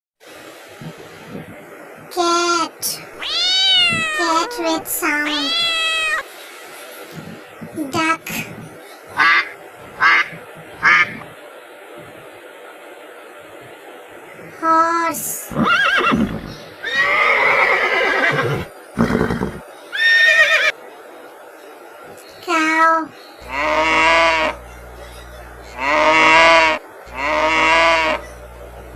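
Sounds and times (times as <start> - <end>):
steady background hiss: 0.2 - 28.9
horse whinnying: 3.2 - 4.5, 15.6 - 20.7.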